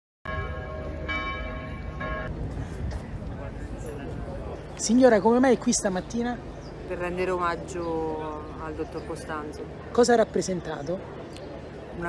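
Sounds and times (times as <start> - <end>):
church bell tolling: 0.3 - 2.4
outdoor crowd noise: 0.3 - 12.0.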